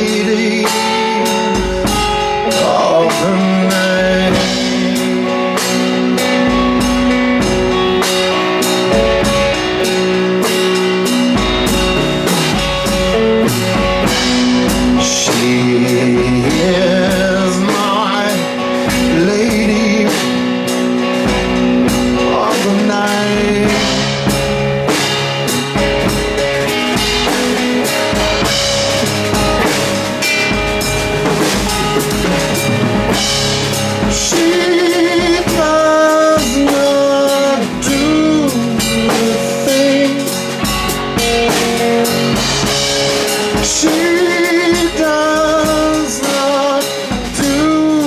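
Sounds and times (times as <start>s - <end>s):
drum kit with cymbals: 0.0s - 48.0s
electric guitar: 0.0s - 48.0s.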